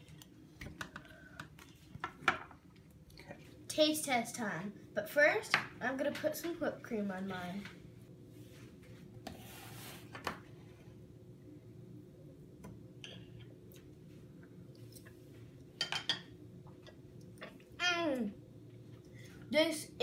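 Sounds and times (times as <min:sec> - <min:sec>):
steady room hum: 0:00.0 - 0:20.0.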